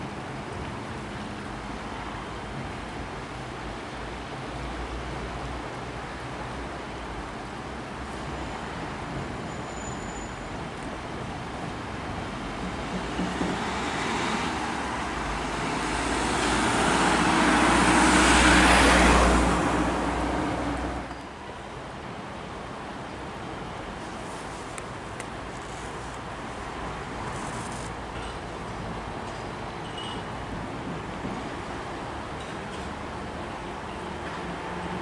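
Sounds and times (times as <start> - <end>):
steady traffic noise: 0.0 - 35.0
vehicle passing: 13.7 - 21.1.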